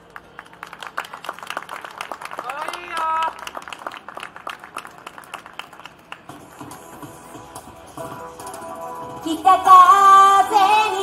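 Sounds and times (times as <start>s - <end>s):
small audience clapping: 0.0s - 6.4s.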